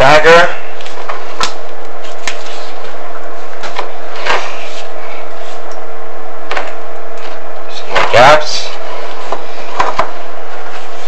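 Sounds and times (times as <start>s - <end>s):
constant hum: 0.0s - 11.0s.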